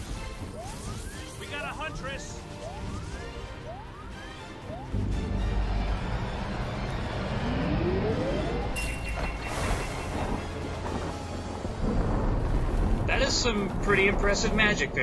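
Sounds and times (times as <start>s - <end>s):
dramatic music: 0.0s - 15.0s
rising sweep: 4.6s - 8.9s
deep rumble: 5.0s - 8.8s, 9.8s - 15.0s.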